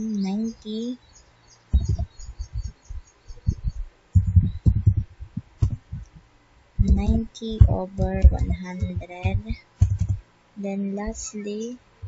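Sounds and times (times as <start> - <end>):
sharp keyboard clicks: 6.8 - 10.2.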